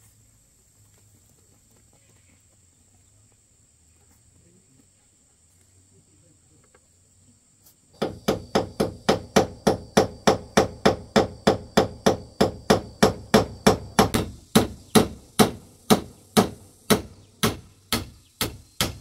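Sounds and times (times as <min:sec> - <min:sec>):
hammer striking nail into metal sheet: 0:08.0 - 0:19.0.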